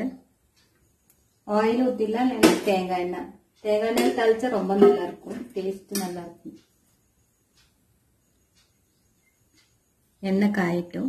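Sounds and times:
person talking: 1.5 - 6.6.

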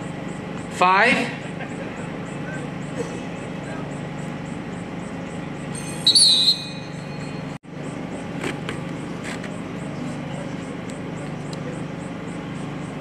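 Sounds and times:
crowd murmur: 1.3 - 4.4, 9.6 - 13.0
referee's whistle trill: 5.8 - 7.2.

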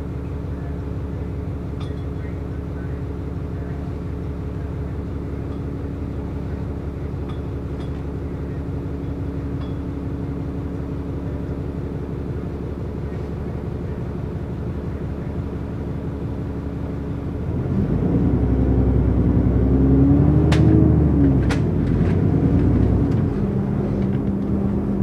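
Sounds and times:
bus diesel engine idling and revving: 0.0 - 25.0.

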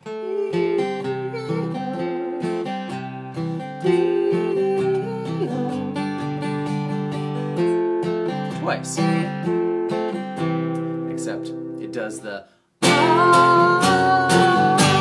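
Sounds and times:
acoustic guitar strumming: 0.0 - 15.0.

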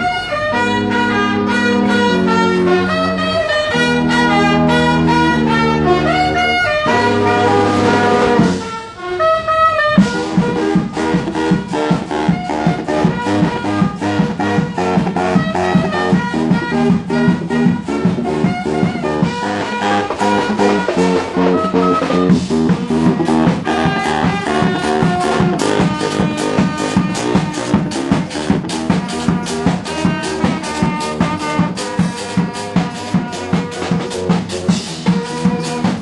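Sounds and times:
street marching band playing: 0.0 - 36.0.

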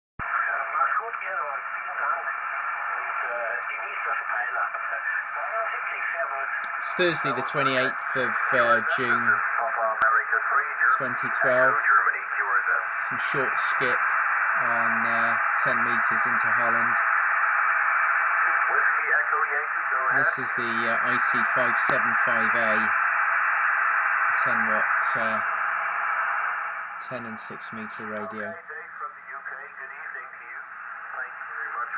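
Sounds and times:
steady radio band noise: 0.2 - 31.9
thin radio voice: 3.7 - 17.0, 18.7 - 23.0, 24.4 - 25.5, 27.0 - 31.9.

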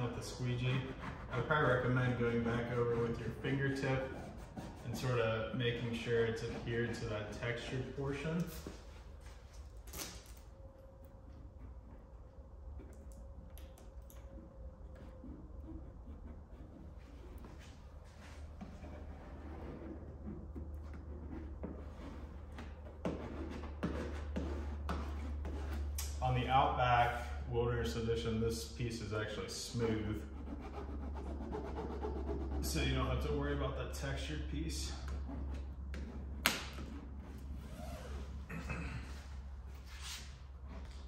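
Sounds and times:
steady low hum: 0.0 - 41.0
sharp snap: 36.4 - 36.8.

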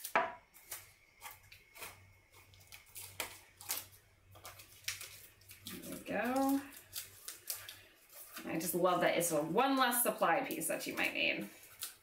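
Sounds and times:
hands handling tape and paper: 0.0 - 8.8, 10.5 - 12.0.

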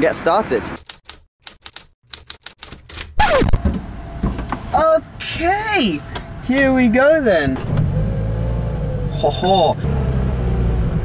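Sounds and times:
short falling squeak: 3.2 - 3.6.

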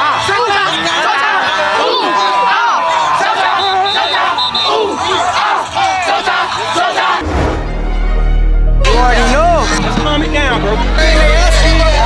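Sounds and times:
youth players shouting battle cry: 0.0 - 7.2.

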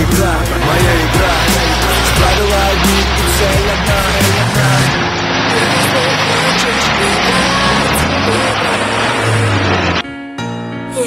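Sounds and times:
noisy wash: 0.0 - 10.0
off-road vehicle engine revving: 0.0 - 10.0
background music: 0.0 - 11.0.

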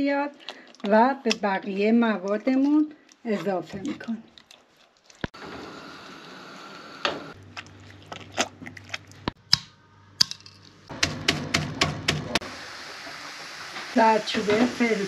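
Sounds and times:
meat pounder striking metal pot: 10.9 - 12.4
onions sizzling: 12.4 - 15.0.

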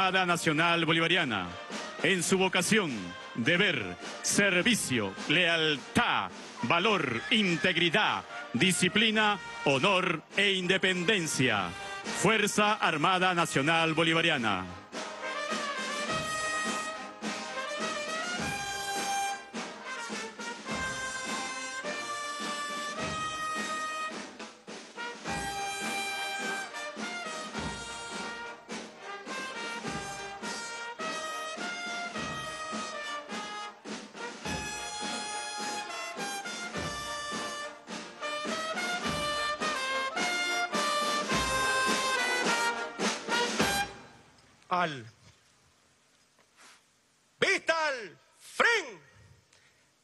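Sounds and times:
military brass band playing: 0.0 - 44.3.

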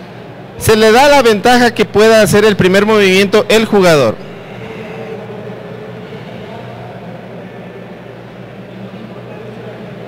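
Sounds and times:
low electrical hum: 0.0 - 10.0
murmur of distant voices: 0.0 - 10.0.

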